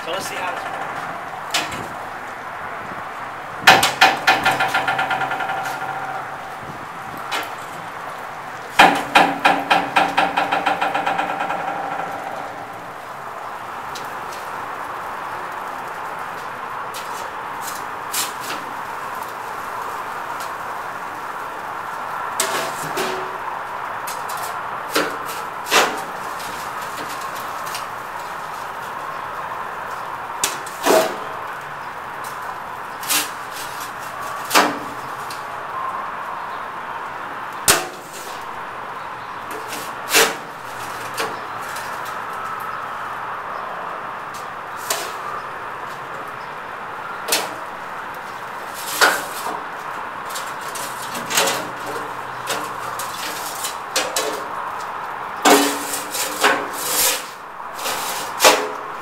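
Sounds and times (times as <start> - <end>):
door rattling and ringing: 0.0 - 2.2, 3.4 - 13.5
steel door banging open: 0.0 - 2.2, 3.4 - 13.2, 55.4 - 57.2
metal clanks and scrapes: 3.7 - 7.8, 22.4 - 23.4, 44.8 - 45.2, 50.3 - 54.5, 55.4 - 58.8.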